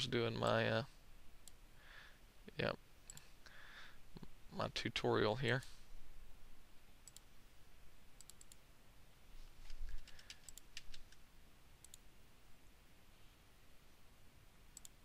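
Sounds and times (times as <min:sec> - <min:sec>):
faint computer mouse clicks: 0:08.2 - 0:08.6, 0:09.6 - 0:11.2, 0:11.8 - 0:12.0, 0:14.8 - 0:15.0.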